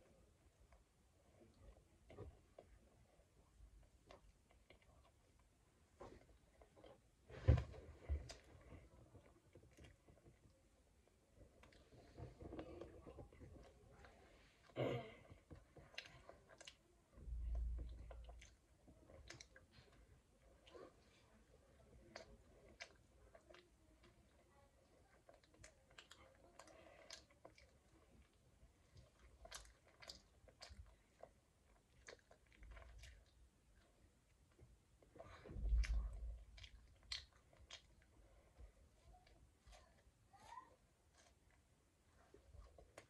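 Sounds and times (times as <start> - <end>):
child chewing: 0.0 - 43.0
faint clicks and rustles: 0.2 - 43.0.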